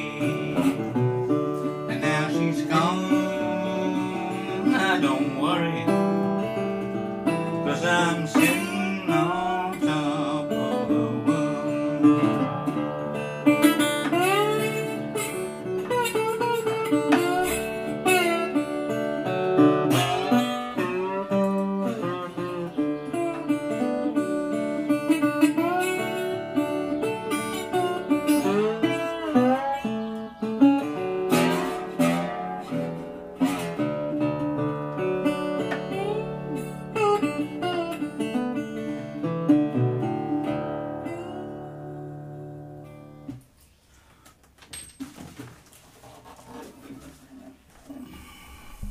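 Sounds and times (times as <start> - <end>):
picked bass notes: 0.0 - 43.4
slide guitar blues: 0.0 - 43.5.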